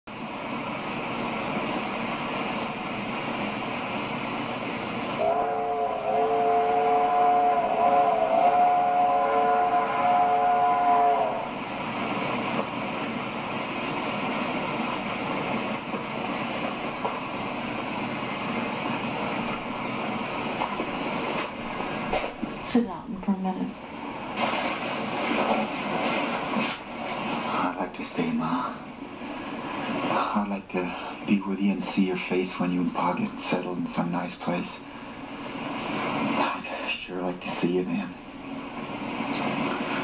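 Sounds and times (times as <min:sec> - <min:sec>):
film soundtrack hiss: 0:00.1 - 0:40.0
train whistle chord: 0:05.2 - 0:11.6.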